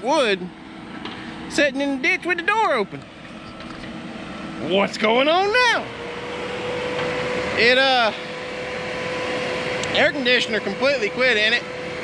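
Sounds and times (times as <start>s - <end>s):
diesel engine running: 0.0s - 12.0s.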